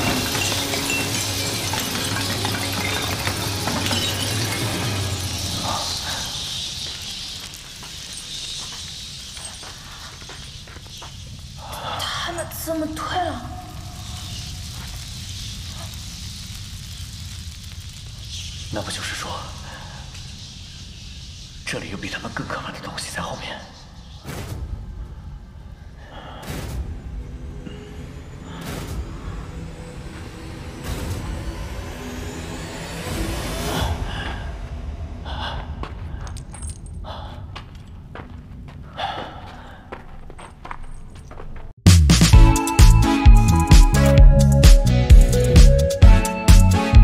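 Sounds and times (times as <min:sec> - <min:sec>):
faint crackling hiss: 0:00.0 - 0:26.0
steady low rumble: 0:24.6 - 0:40.0.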